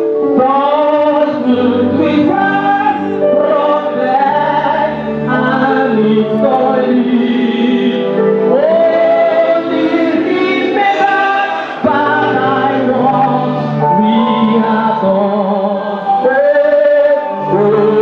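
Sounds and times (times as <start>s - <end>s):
congregation singing a gospel song: 0.4s - 18.0s.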